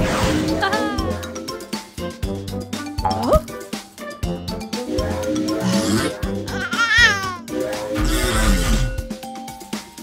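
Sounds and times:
cartoon backing music: 0.0s - 10.0s.

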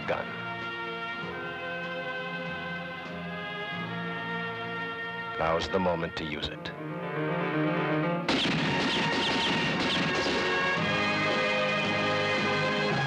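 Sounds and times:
western film score with held chords: 0.0s - 13.0s.

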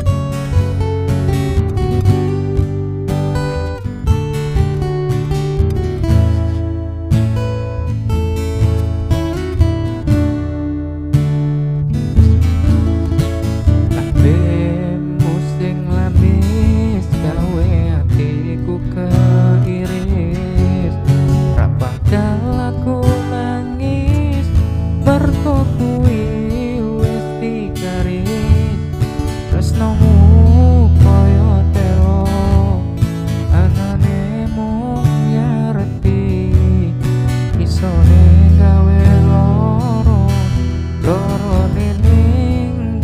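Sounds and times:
acoustic guitar strumming: 0.0s - 43.0s.

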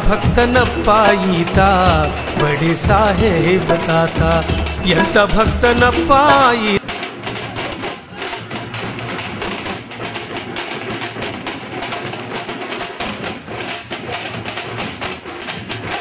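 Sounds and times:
drum band playing fast rhythm: 0.0s - 16.0s.

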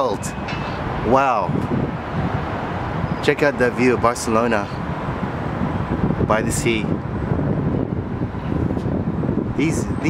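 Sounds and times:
city traffic hum: 0.0s - 10.0s
wind buffeting microphone: 0.0s - 10.0s.

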